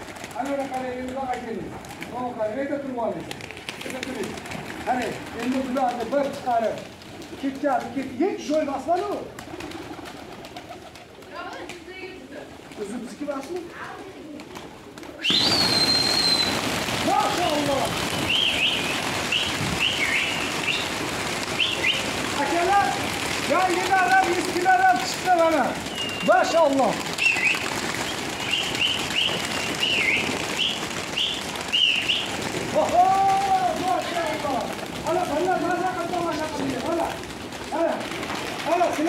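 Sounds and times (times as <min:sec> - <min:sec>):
flock wingbeats: 0:00.0 - 0:39.0
pigeons cooing: 0:09.2 - 0:11.6, 0:13.8 - 0:39.0
long high whistle: 0:15.2 - 0:16.5.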